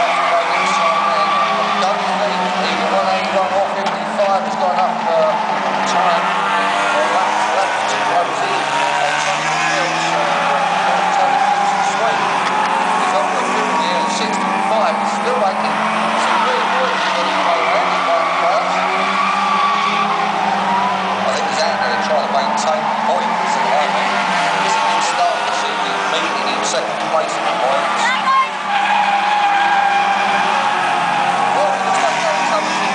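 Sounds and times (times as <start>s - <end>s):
racing car engines lapping: 0.0s - 32.9s.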